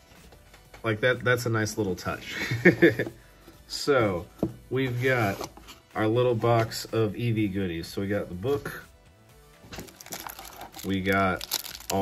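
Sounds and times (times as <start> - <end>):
plastic wrap crinkling: 9.7 - 12.0
rummaging in cardboard box: 9.7 - 12.0.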